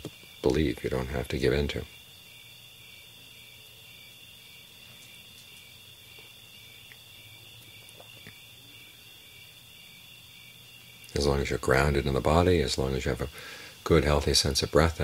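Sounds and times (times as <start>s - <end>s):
faint crickets chirping: 0.0s - 15.0s
low hiss: 0.0s - 15.0s.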